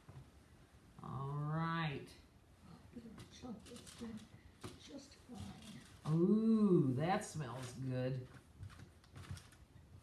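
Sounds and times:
aluminium foil rustling and clicking: 3.2 - 6.2, 7.2 - 10.0.

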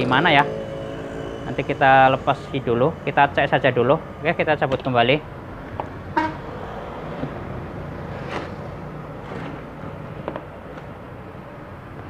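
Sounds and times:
steady low hum: 0.0 - 7.8.

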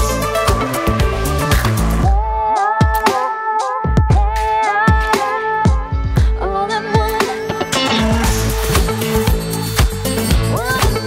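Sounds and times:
electronic music with drum beat: 0.0 - 11.0.

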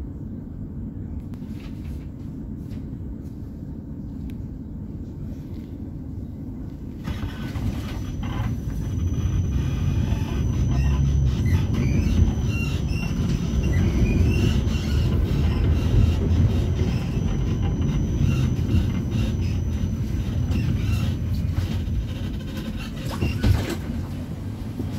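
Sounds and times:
tram rumbling on track: 0.0 - 24.9
wheels squealing: 7.0 - 23.9
thin high whine: 7.1 - 22.0.

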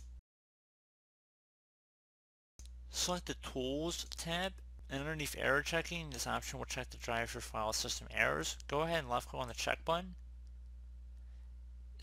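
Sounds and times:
low electrical hum: 2.6 - 12.0.

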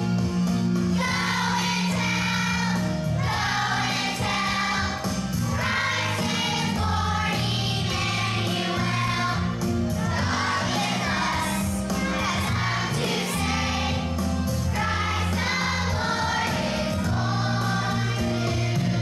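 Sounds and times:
children's choir singing: 0.9 - 19.0.

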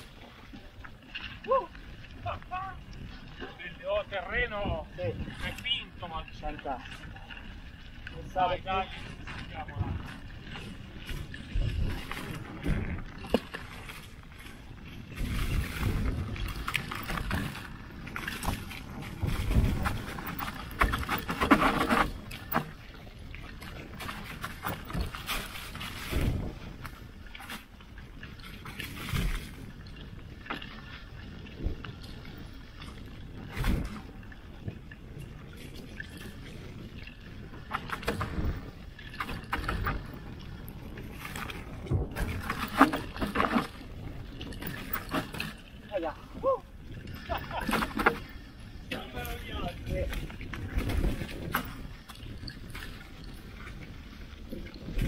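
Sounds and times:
bike tyres rolling over dirt: 8.2 - 55.0
bike knocking and rattling: 15.1 - 22.8, 23.6 - 27.7, 37.6 - 40.3, 47.3 - 53.7.

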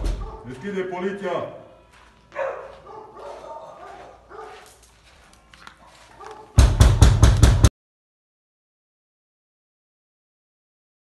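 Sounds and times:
dog barking rapidly: 0.0 - 0.6, 2.3 - 4.8, 6.1 - 6.7.

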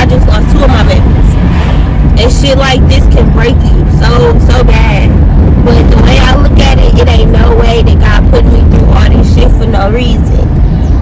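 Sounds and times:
woman talking: 0.0 - 1.2, 2.2 - 10.5
minivan road and engine rumble: 0.0 - 11.0.

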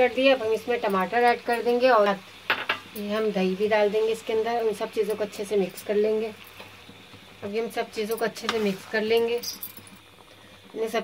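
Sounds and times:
woman speaking: 0.0 - 2.2, 3.0 - 6.4, 7.4 - 9.7, 10.8 - 11.0.

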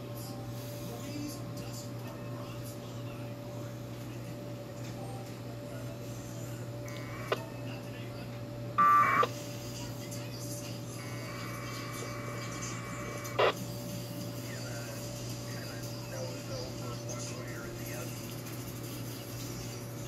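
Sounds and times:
steady low hum: 0.0 - 20.0
radio data tone bursts: 8.8 - 9.4, 11.0 - 13.6.

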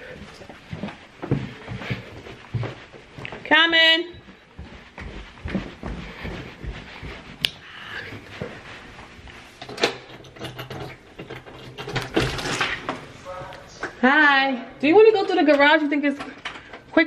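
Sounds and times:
indoor footsteps: 0.0 - 17.0.

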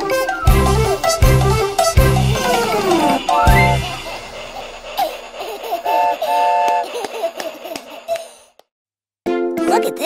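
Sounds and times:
children's song music: 0.0 - 4.1, 9.3 - 10.0
cartoon baby giggling: 2.3 - 8.4.

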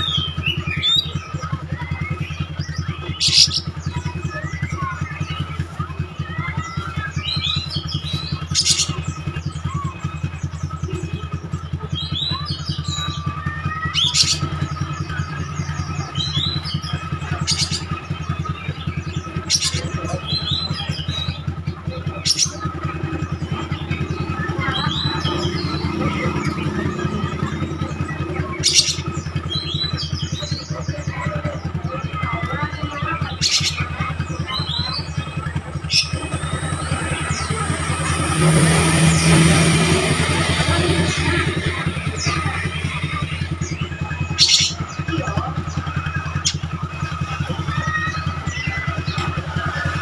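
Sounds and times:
bird singing chirps and whistles: 0.0 - 49.9
steady low hum: 33.9 - 45.8.

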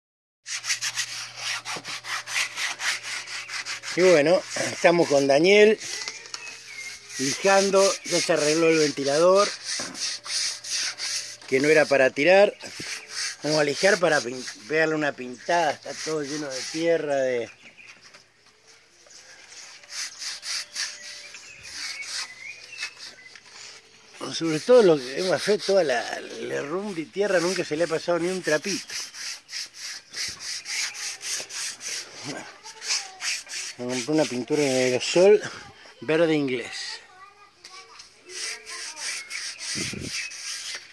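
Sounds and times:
sandpaper scraping strokes: 0.4 - 17.5, 19.1 - 36.9, 37.7 - 40.9.

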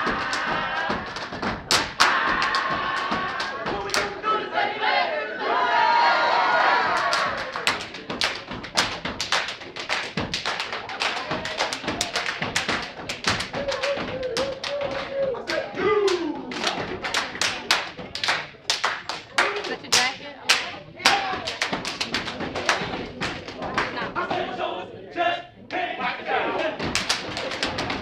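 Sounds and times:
hand claps: 0.0 - 4.2, 6.8 - 24.2, 26.8 - 28.0
rhythmic foot stomps: 0.0 - 4.2, 6.6 - 24.5, 26.6 - 28.0.

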